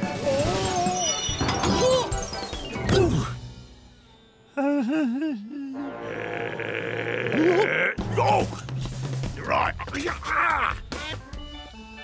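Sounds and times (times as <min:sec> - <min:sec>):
wavering vocal cry: 0:04.6 - 0:08.0.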